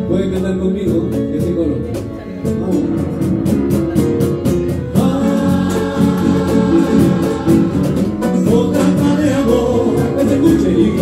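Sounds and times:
acoustic band playing: 0:00.0 - 0:11.0
upright bass: 0:00.0 - 0:11.0
person singing: 0:04.9 - 0:11.0.

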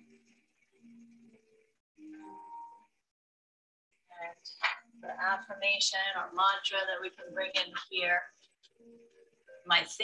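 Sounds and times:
soft slow music of held notes: 0:00.0 - 0:03.1, 0:04.2 - 0:10.0.

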